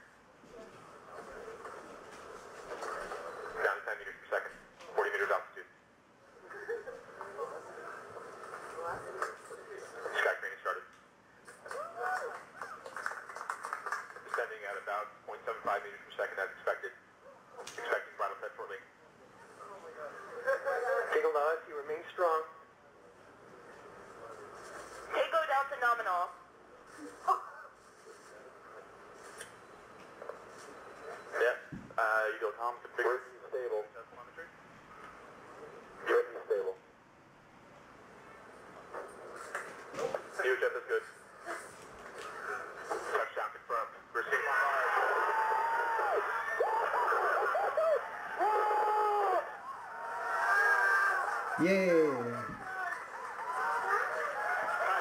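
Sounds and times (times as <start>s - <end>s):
voice over telephone-like channel: 36.0s - 36.8s.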